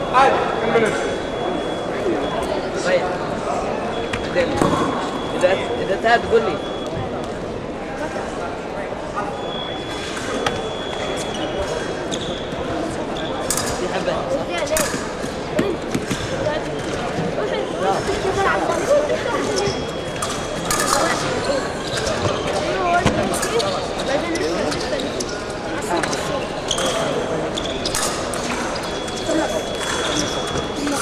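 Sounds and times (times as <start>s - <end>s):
people talking: 0.0s - 31.0s.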